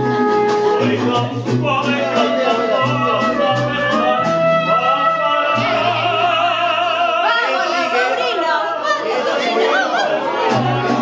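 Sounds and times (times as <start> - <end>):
mariachi music: 0.0 - 11.0
party guests chattering: 0.0 - 11.0.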